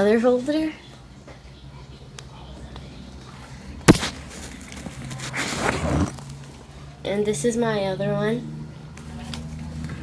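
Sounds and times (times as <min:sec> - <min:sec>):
sharp knock: 0:03.9 - 0:04.2
rustling and scraping in a bag: 0:03.9 - 0:06.5.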